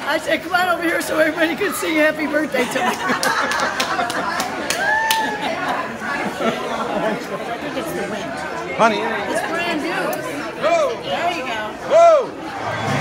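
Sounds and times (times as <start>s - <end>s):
party guests chattering: 0.0s - 13.0s.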